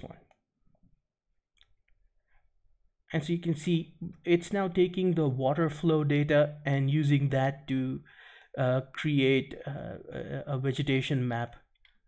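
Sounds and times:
person speaking: 0:00.0 - 0:00.3, 0:03.1 - 0:08.0.

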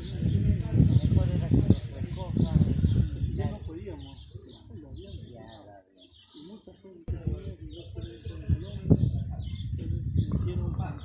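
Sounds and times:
birds chirping: 0:00.0 - 0:11.0
indistinct voices talking: 0:00.0 - 0:11.0.

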